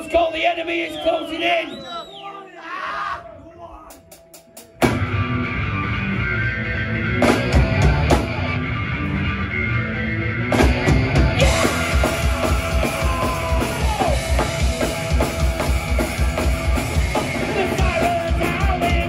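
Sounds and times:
punk rock band playing: 3.9 - 19.0.

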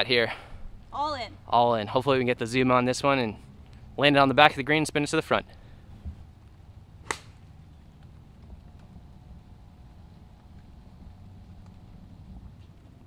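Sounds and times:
faint low rumble: 0.5 - 13.0
golf club striking ball: 7.0 - 7.4.

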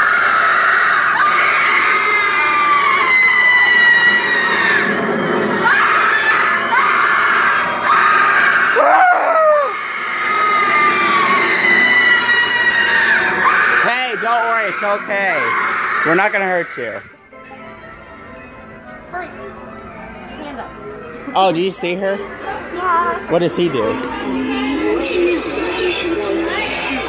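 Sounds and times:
high screams sliding down: 0.0 - 16.3
brief lower cry: 8.8 - 9.8.

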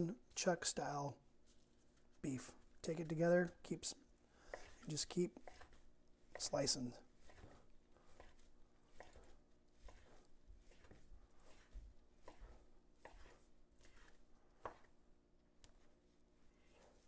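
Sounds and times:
knife chopping on wooden board: 4.5 - 14.9.

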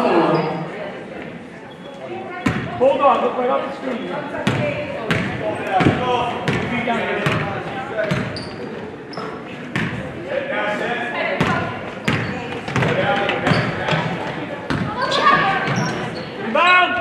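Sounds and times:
voices in echoing gym: 0.0 - 17.0.

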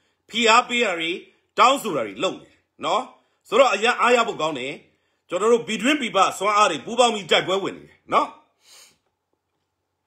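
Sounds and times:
man speaking a syllable: 0.3 - 8.5
brief breath: 8.6 - 9.1.

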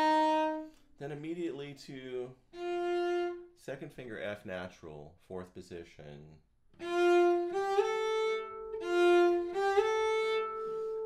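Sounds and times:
cello bowed high notes: 0.0 - 0.8, 2.5 - 3.6, 6.8 - 11.0.

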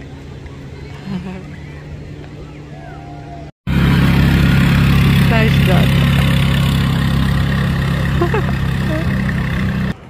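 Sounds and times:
low engine hum: 0.0 - 10.0.

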